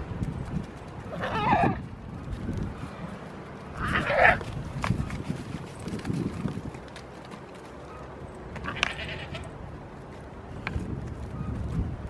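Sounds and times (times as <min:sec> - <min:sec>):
goat bleating: 0:08.6 - 0:09.5.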